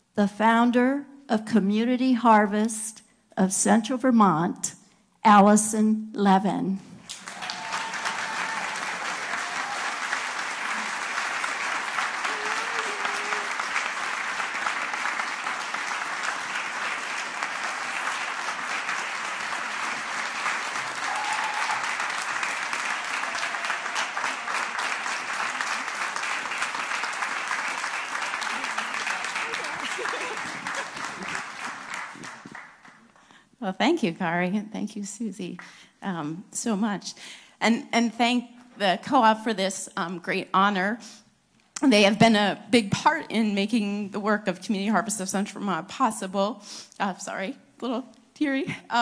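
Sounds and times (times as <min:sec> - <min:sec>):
audience applauding: 0:07.0 - 0:33.2
voices calling out: 0:12.1 - 0:13.8, 0:28.3 - 0:31.4.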